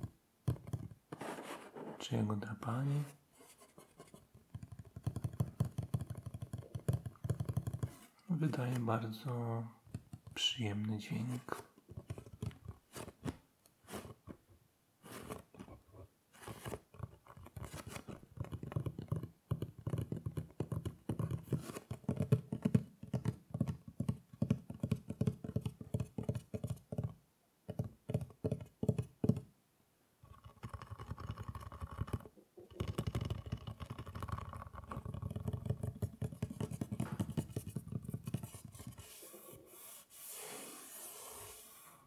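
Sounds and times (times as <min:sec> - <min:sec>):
fingertips tapping on wooden box: 0:00.0 - 0:01.0, 0:04.1 - 0:08.2, 0:09.9 - 0:10.4, 0:16.5 - 0:29.5, 0:30.3 - 0:39.2
fingernails scratching wood: 0:32.9 - 0:42.0.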